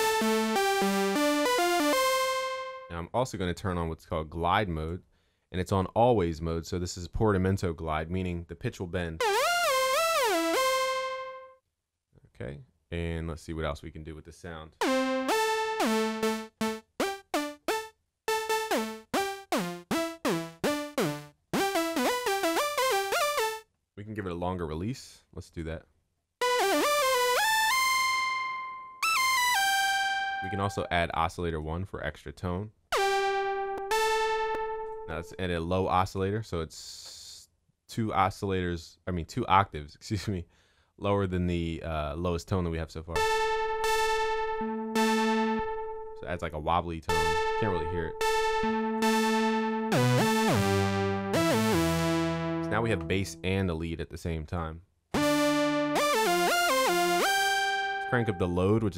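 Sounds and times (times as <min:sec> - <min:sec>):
synth melody with gliding notes: 0:00.0 - 0:02.9, 0:09.2 - 0:11.5, 0:14.8 - 0:23.6, 0:26.4 - 0:30.9, 0:33.0 - 0:35.4, 0:43.2 - 0:46.3, 0:47.1 - 0:53.5, 0:55.2 - 0:58.8
lower synthesizer tone: 0:43.2 - 0:46.3, 0:47.1 - 0:53.4, 0:55.2 - 0:58.6.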